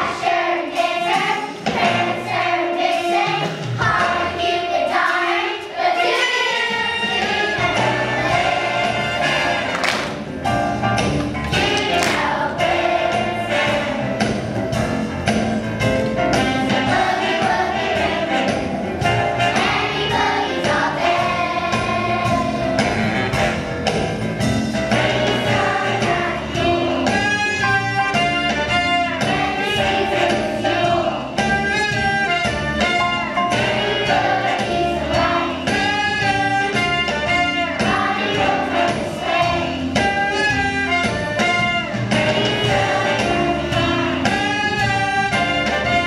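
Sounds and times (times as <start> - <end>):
children's choir singing: 0.0 - 10.3, 11.4 - 15.4, 16.3 - 24.0, 24.9 - 46.0
music with steady beat: 6.9 - 46.0.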